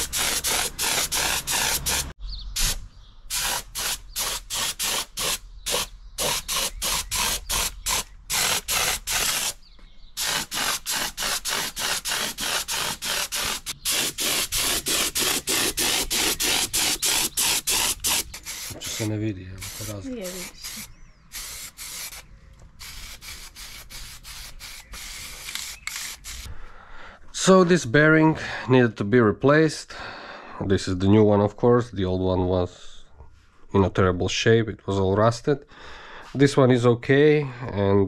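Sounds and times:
air spray gun hissing: 0.0s - 9.6s, 10.2s - 26.5s.

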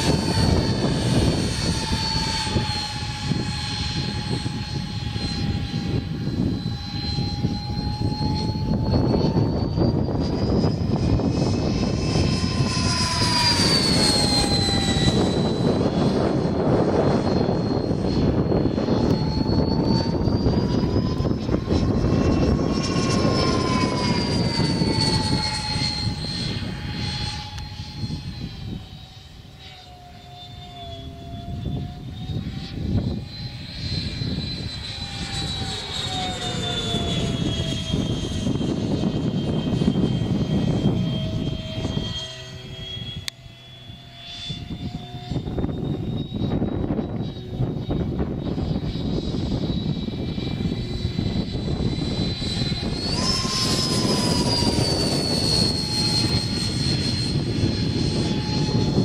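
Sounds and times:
model jet fans whining: 0.0s - 59.0s.

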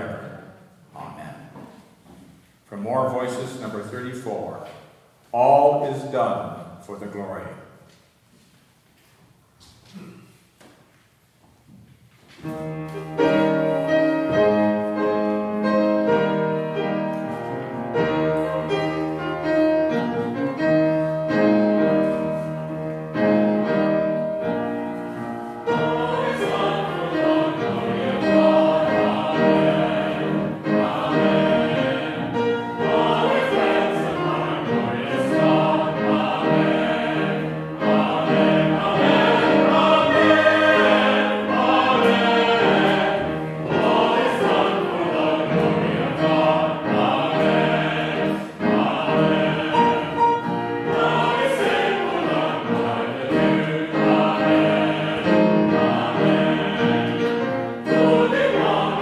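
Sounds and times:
congregation singing a hymn: 0.0s - 0.8s, 12.4s - 59.0s.

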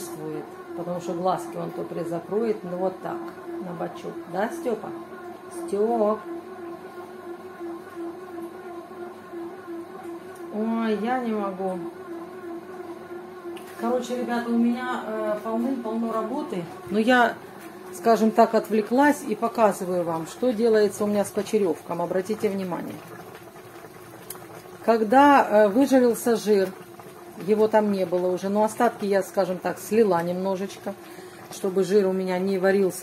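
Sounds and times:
bread maker motor humming: 0.0s - 33.0s
meat simmering in a pan: 16.8s - 33.0s.

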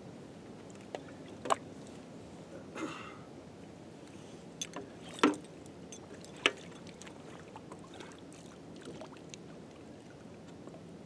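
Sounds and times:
faint water sounds: 0.0s - 11.0s.

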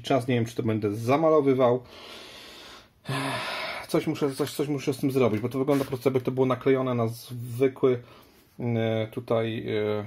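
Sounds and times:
man breathing out: 1.9s - 3.8s.

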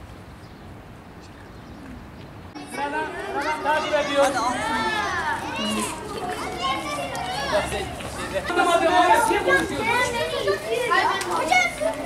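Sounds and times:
children talking and calling out: 2.6s - 12.0s.

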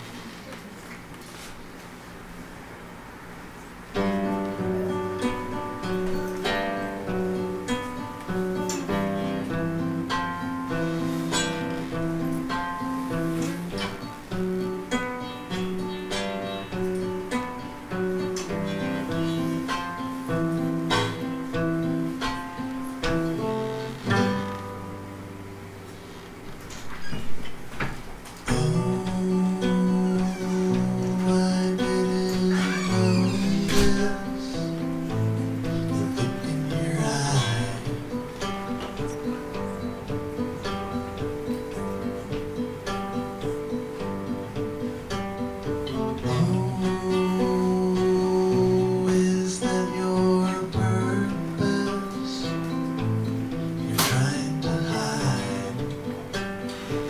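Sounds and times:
fingerpicked acoustic guitar: 3.4s - 57.0s.

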